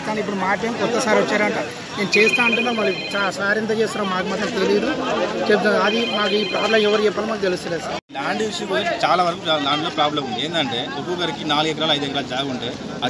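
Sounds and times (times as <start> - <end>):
telephone ringing: 2.0 - 4.2, 5.6 - 7.5.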